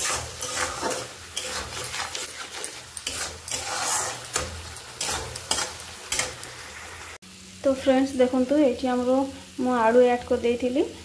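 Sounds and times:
metal spoon scraping pan: 0.0s - 6.6s
oil sizzling: 0.0s - 11.0s.

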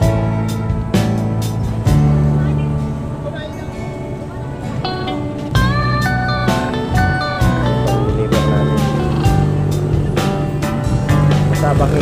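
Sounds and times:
background music with drum beat: 0.0s - 2.3s, 5.4s - 12.0s.

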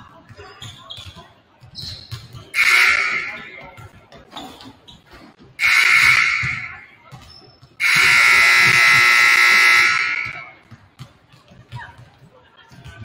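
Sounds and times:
scoreboard horn blasts: 2.6s - 3.5s, 5.6s - 6.9s, 7.8s - 10.6s.

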